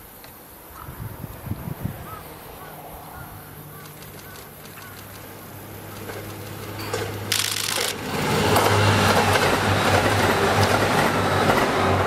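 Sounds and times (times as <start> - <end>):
wheel and rail noise: 0.0 - 12.0
diesel train passing: 1.1 - 12.0.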